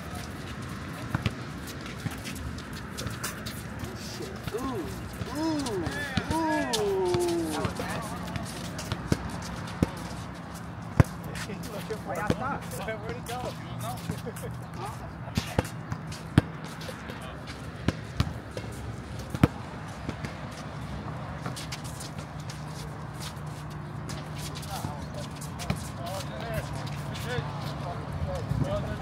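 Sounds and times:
distant voices calling out: 0:03.8 - 0:08.9.

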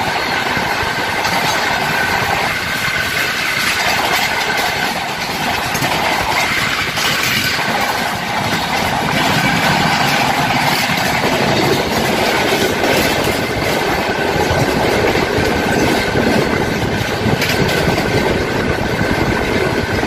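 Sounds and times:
passenger train running: 0:00.0 - 0:20.0
second train passing alongside: 0:00.0 - 0:20.0.

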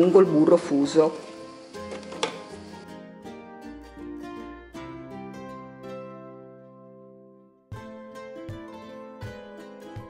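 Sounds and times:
plucked string music: 0:00.2 - 0:10.0.

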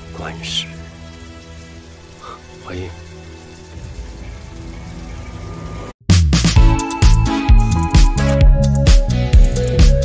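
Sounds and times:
steady rain-like hiss: 0:00.0 - 0:06.0
soundtrack music with held tones: 0:00.0 - 0:10.0.

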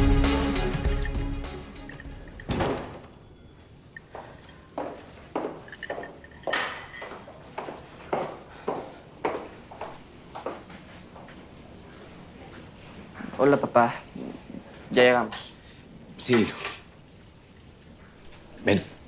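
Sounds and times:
background music: 0:00.0 - 0:02.9
footsteps on a hard floor: 0:04.2 - 0:11.6.

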